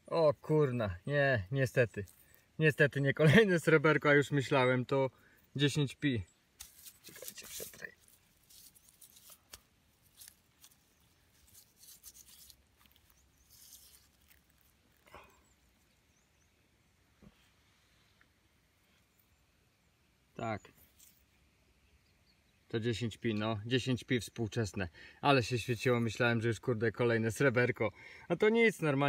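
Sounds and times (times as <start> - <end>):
crackling of damp soil rubbed: 0.4 - 3.5, 6.6 - 16.0
digging tool in turf: 6.6 - 15.1.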